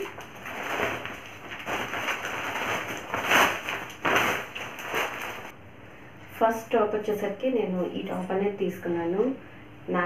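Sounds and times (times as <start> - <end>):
plastic bag rustling: 0.0 - 5.6.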